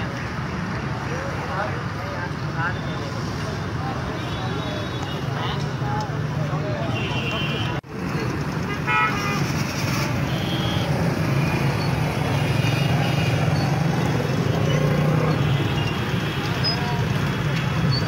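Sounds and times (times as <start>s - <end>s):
people's voices: 0.0s - 7.8s
vehicle engines humming: 7.6s - 18.0s.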